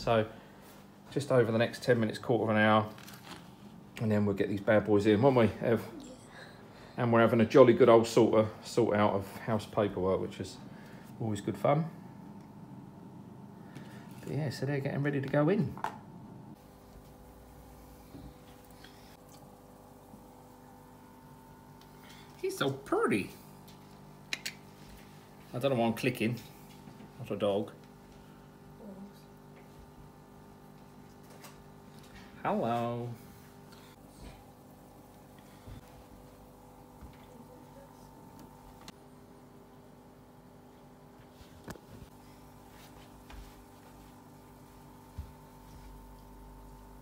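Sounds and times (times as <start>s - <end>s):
aquarium filter pump hum: 0.0s - 47.0s.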